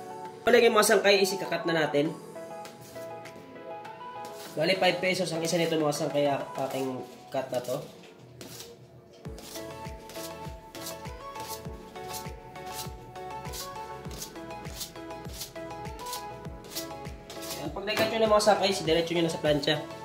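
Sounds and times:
background music: 0:00.0 - 0:08.6, 0:09.3 - 0:20.0
knife chopping onto steel table: 0:17.4 - 0:18.3.

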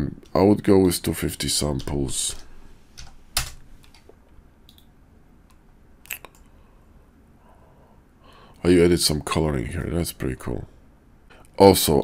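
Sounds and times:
keyboard and mouse clicks: 0:01.8 - 0:04.9.

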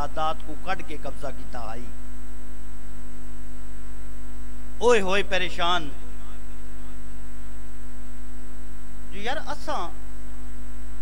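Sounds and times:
loud electrical mains hum: 0:00.0 - 0:11.0.

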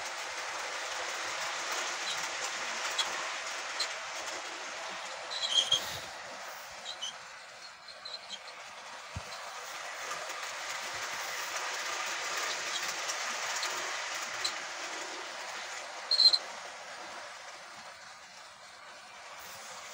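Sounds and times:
model train rolling on track: 0:00.0 - 0:19.9
wheels clicking on rail joints: 0:00.0 - 0:19.9
loud high-pitched squeal: 0:05.3 - 0:06.0, 0:16.1 - 0:16.4.

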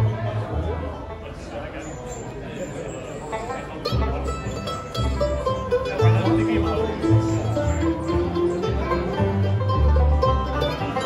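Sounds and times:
low bass notes: 0:00.0 - 0:01.5, 0:03.8 - 0:11.0
bluegrass band playing: 0:00.0 - 0:11.0.

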